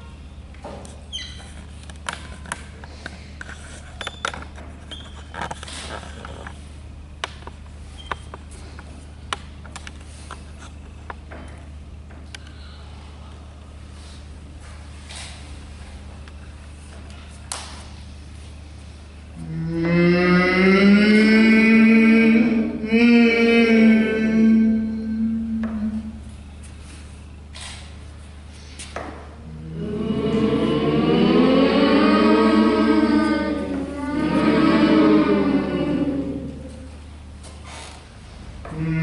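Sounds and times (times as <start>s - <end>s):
marker squeaking on whiteboard: 1.1s - 1.8s, 3.7s - 6.0s
low hum: 19.3s - 27.1s, 29.4s - 37.4s
low voices singing rising tone: 19.4s - 26.2s, 29.4s - 37.1s, 38.7s - 39.0s.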